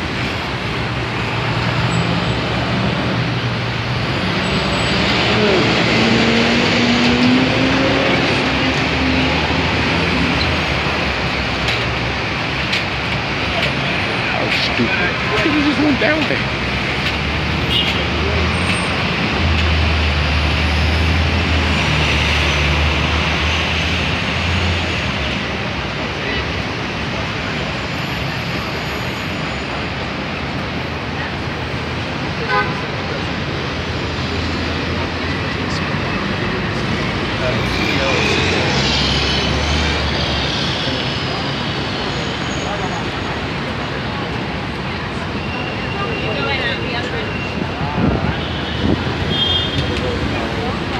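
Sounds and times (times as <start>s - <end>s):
road noise from passing cars: 0.0s - 50.9s.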